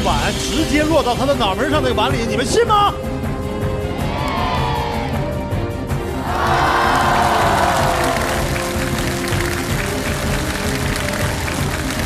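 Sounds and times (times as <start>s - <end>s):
stage background music: 0.0s - 12.0s
audience applauding: 6.1s - 12.0s.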